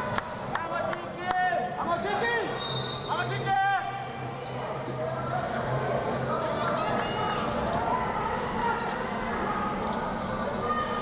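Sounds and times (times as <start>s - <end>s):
referee's whistle blast: 2.6s - 3.3s.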